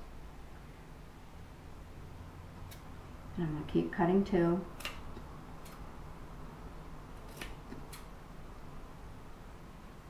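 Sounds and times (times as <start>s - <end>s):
scissors snipping fabric: 7.2s - 8.1s.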